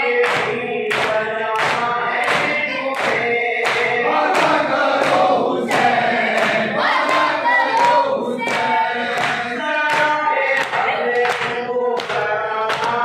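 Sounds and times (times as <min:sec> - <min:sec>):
men chanting in unison: 0:00.0 - 0:13.0
rhythmic chest-beating: 0:00.0 - 0:13.0.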